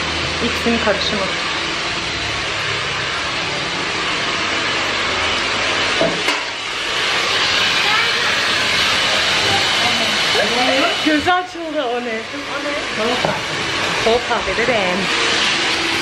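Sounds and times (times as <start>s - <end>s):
hair dryer running: 0.0s - 16.0s.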